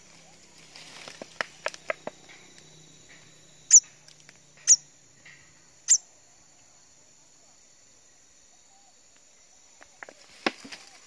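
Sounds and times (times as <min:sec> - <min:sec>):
insect drone: 0:00.0 - 0:11.0
sharp high-pitched chirps: 0:03.6 - 0:03.9, 0:04.6 - 0:04.9.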